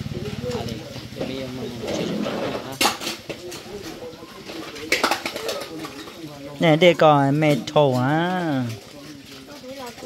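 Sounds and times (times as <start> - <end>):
dishes clattering: 1.2 - 8.9.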